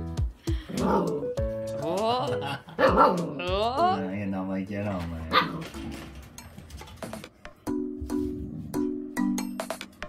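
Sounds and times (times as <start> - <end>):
puppy barking: 0.8 - 1.2, 2.8 - 3.4, 5.3 - 5.7.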